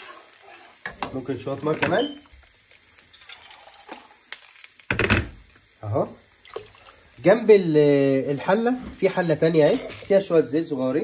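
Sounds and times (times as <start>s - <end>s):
sauce simmering in a pot: 0.0s - 11.0s.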